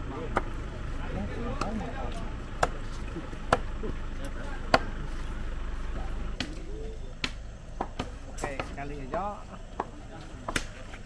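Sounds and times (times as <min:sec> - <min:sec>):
knives chopping on wooden board: 0:02.6 - 0:03.8, 0:04.7 - 0:04.9, 0:07.2 - 0:11.0.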